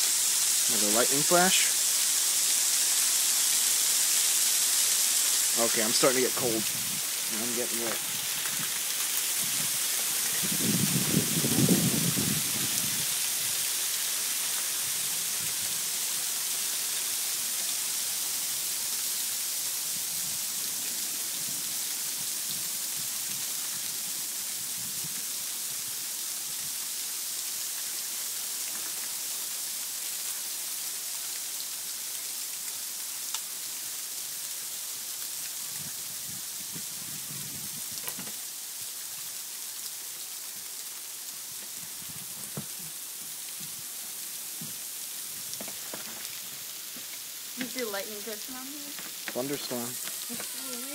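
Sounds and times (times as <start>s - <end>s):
freezing rain and hail pouring: 0.0s - 50.9s.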